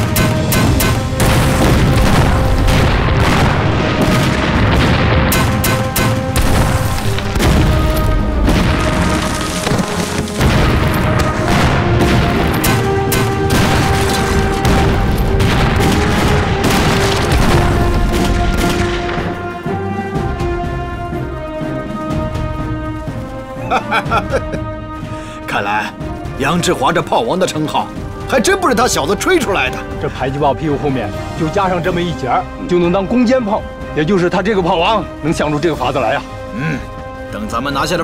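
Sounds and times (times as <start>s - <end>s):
explosion blast: 0.0s - 19.4s
heavy rumble of explosions: 0.0s - 21.0s
dramatic music: 0.0s - 38.0s.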